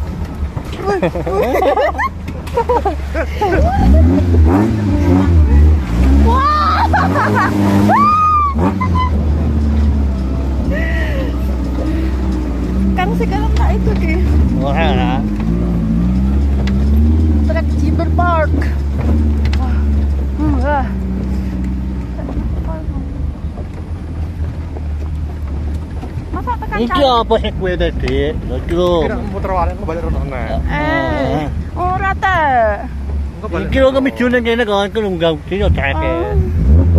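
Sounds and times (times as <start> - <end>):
off-road vehicle engine at low revs: 0.0 - 36.9.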